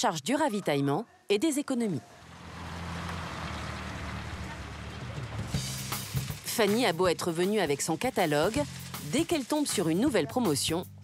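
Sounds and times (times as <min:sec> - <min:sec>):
vehicle engine humming: 0:02.0 - 0:10.2
hiss of car park traffic: 0:02.7 - 0:06.4.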